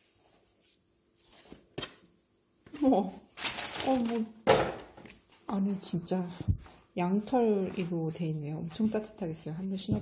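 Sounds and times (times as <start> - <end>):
tissue paper rustling: 3.4 - 4.2.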